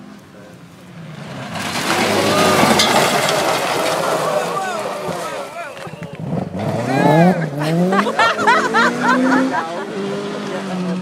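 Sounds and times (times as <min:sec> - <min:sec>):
gravel noise: 0:00.0 - 0:11.0
rally car engine: 0:00.0 - 0:11.0
people calling excitedly: 0:02.0 - 0:11.0.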